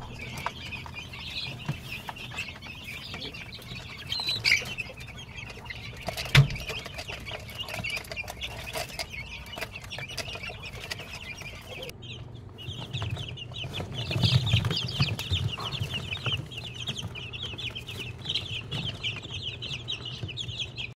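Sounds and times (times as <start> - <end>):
chicks peeping: 0.0 - 21.0.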